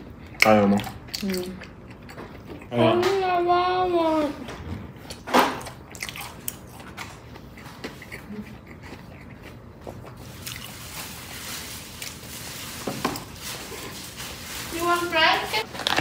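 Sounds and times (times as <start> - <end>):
chewing: 0.0 - 3.2, 4.5 - 12.4.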